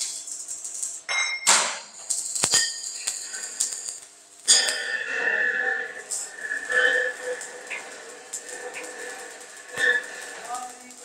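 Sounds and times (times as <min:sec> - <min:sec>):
metallic clangs on steel sheet: 0:01.1 - 0:03.2.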